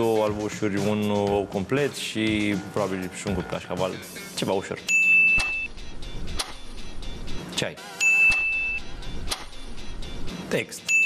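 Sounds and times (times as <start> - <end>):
background music: 0.0 - 11.0
high electronic ding: 4.9 - 5.7, 8.0 - 8.9
sharp click: 6.4 - 6.6, 8.3 - 8.5, 9.3 - 9.5.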